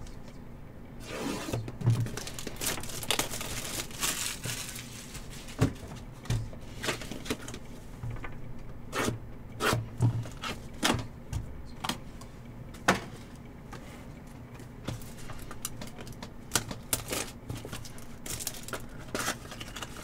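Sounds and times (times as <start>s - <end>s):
cardboard rustling: 1.4s - 6.1s.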